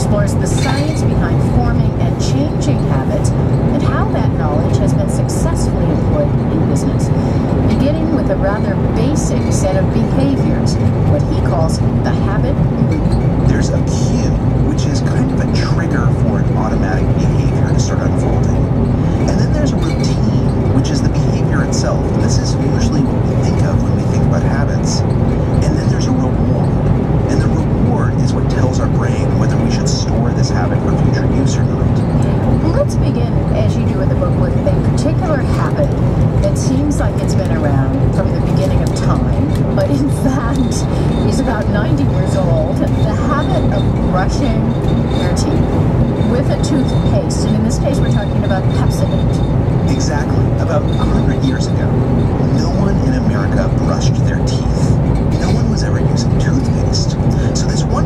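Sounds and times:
faint radio talk: 0.0s - 45.6s, 46.3s - 58.0s
car road and engine noise: 0.0s - 58.0s.

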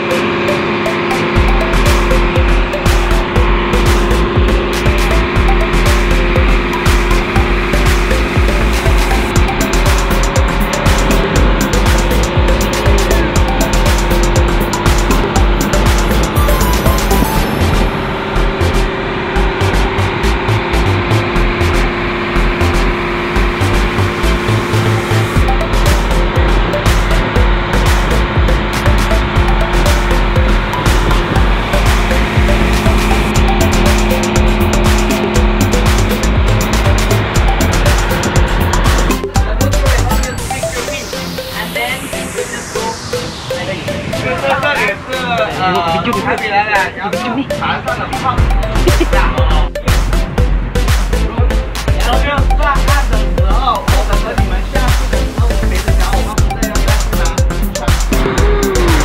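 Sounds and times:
water noise: 0.0s - 52.0s
boat engine droning: 0.0s - 59.0s.

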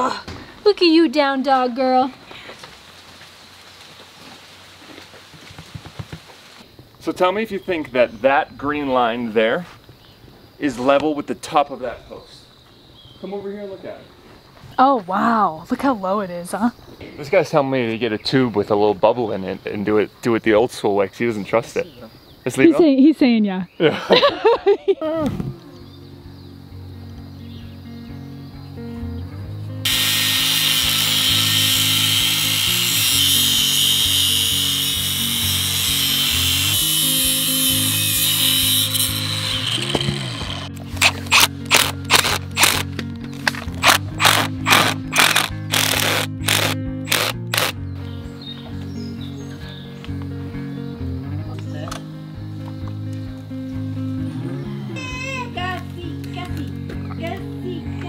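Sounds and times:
background music: 23.8s - 58.0s
loud steady hiss: 29.8s - 42.8s, 43.8s - 47.8s
cordless drill bursts: 29.9s - 42.8s, 43.8s - 47.7s.

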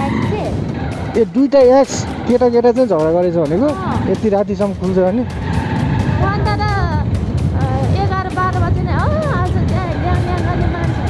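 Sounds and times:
background music: 0.0s - 11.0s
motorcycle engine rumble: 0.0s - 11.0s.

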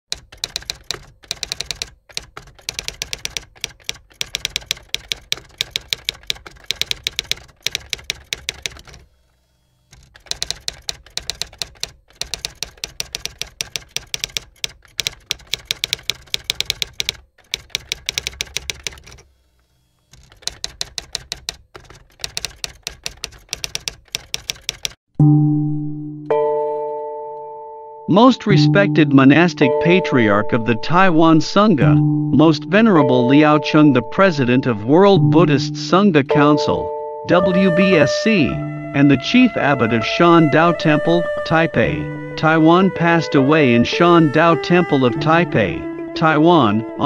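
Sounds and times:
typewriter keys clacking: 0.1s - 9.1s, 9.9s - 19.3s, 20.1s - 25.0s
deep bell ringing: 25.2s - 31.0s, 36.3s - 37.7s.

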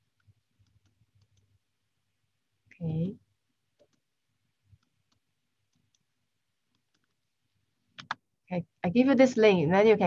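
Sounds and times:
faint computer clicks: 0.2s - 1.5s, 3.7s - 4.0s, 6.7s - 7.2s, 8.0s - 8.2s.

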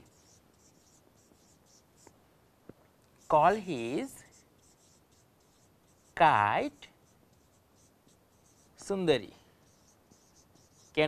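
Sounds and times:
marker scratching on whiteboard: 0.0s - 2.2s, 3.2s - 11.0s.

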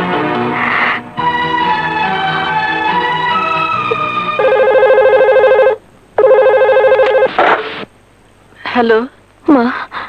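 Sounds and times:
desk telephone electronic ringing: 4.4s - 7.3s.

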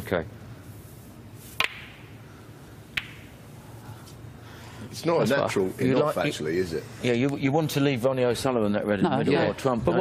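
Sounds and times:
snooker balls clicking: 1.6s - 2.1s, 2.9s - 3.4s.

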